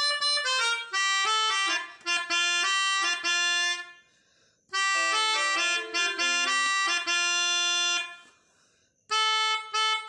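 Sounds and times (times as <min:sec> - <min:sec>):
melodica holding reedy note: 0:04.7 - 0:08.1, 0:09.1 - 0:10.0.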